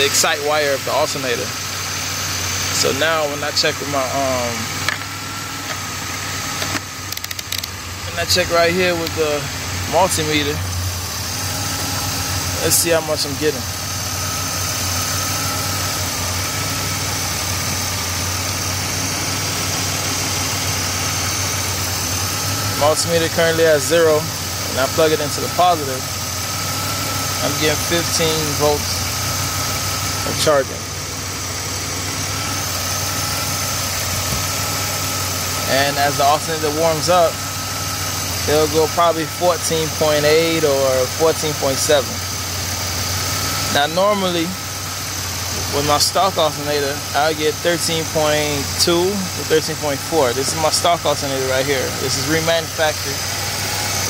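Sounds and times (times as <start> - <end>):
car engine idling: 0.0 - 54.0
rotary dial clicking: 4.8 - 7.8.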